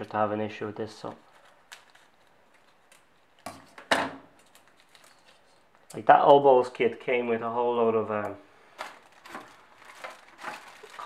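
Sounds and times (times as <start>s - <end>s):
plastic bag rustling: 1.0s - 3.4s, 8.7s - 11.0s.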